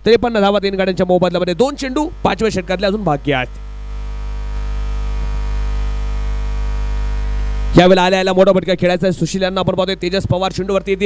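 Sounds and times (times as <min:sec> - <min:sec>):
commentator speaking: 0:00.0 - 0:03.6, 0:07.8 - 0:11.0
electrical mains hum: 0:00.0 - 0:11.0.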